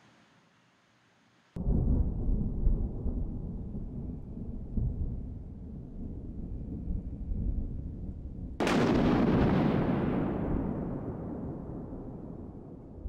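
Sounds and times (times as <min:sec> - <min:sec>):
loud boom: 0:08.6 - 0:12.8.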